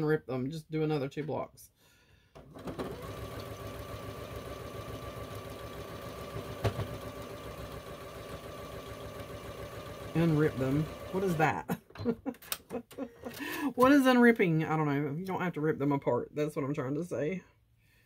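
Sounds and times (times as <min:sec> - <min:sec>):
sewing machine whining: 0:02.4 - 0:11.5.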